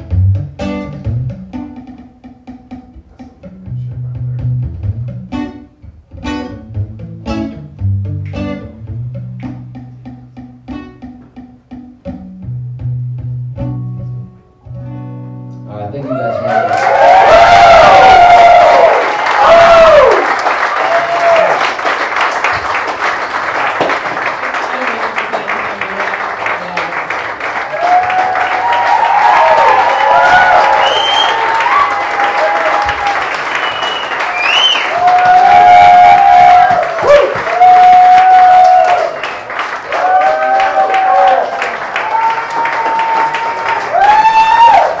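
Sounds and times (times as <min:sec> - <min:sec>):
audience cheering and whistling: 0:16.1 - 0:21.7, 0:27.7 - 0:45.0
applause: 0:16.4 - 0:45.0.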